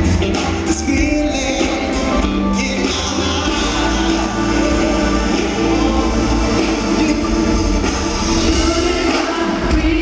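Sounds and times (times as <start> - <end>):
bass guitar: 0.0 - 10.0
electric guitars: 0.0 - 10.0
live band playing: 0.0 - 10.0
man singing lead vocal: 0.0 - 10.0.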